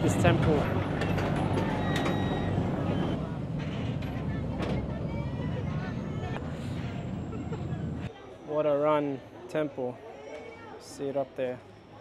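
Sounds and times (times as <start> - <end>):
boat engine rumble: 0.2 - 8.1
faint voices: 1.2 - 12.0.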